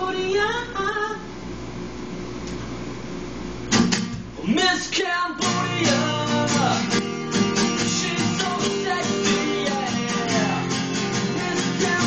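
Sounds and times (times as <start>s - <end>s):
acoustic guitar strumming: 3.7s - 12.0s
person singing: 4.4s - 12.0s.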